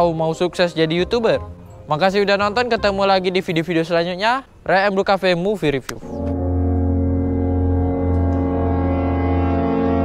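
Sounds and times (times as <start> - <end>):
long low horn note: 6.0 - 10.0.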